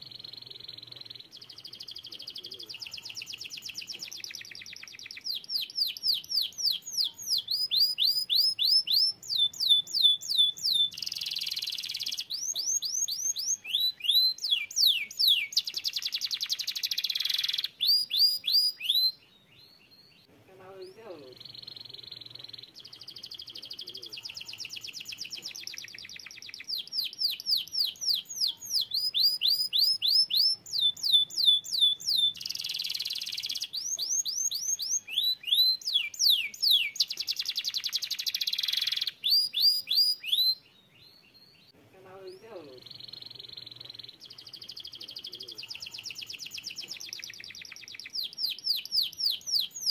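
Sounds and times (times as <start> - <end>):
canary singing: 0.0 - 49.9.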